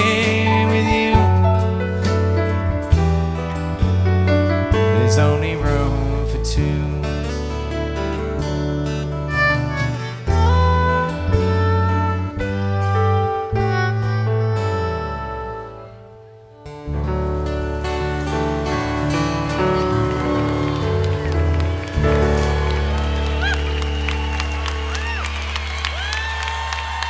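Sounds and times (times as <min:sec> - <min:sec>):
live band with guitars: 0:00.0 - 0:27.0
audience clapping: 0:18.0 - 0:27.0
audience whistling: 0:18.2 - 0:27.0.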